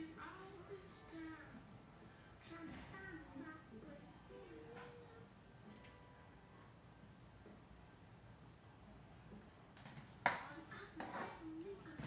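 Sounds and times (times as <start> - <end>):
people talking: 0.0 - 1.6, 10.4 - 12.0.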